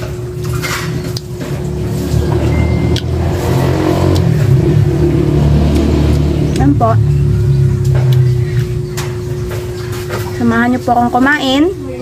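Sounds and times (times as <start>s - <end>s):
steady hum: 0.0s - 12.0s
vehicle engine running: 1.3s - 11.5s.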